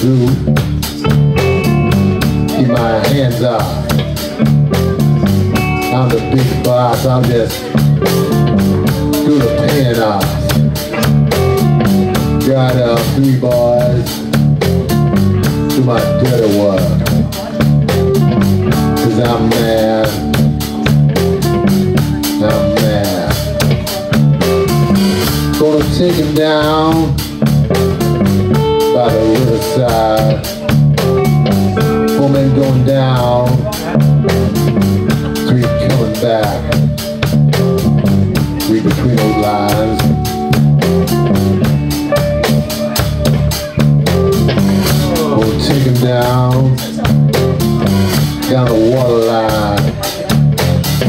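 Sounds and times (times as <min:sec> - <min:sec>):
bent guitar notes: 0:00.0 - 0:51.0
live blues band playing: 0:00.0 - 0:51.0.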